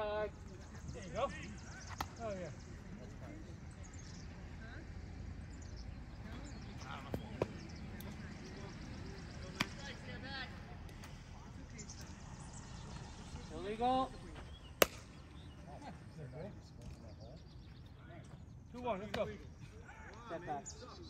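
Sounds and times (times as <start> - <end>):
ball striking bat or glove: 1.9 - 2.4, 7.0 - 7.8, 9.4 - 10.0, 14.8 - 15.3.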